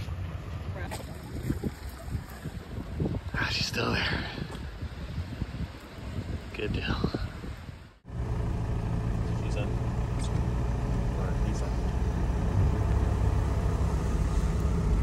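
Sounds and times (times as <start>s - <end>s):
diesel engine rumbling: 2.6s - 15.0s.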